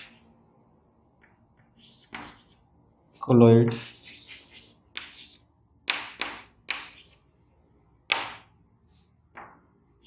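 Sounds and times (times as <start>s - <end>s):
chalk scraping on blackboard: 0.0s - 0.2s, 1.8s - 2.6s, 3.2s - 7.2s.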